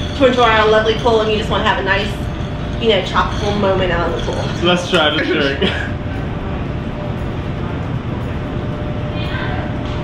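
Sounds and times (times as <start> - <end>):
low rumble of ventilation: 0.0 - 10.0.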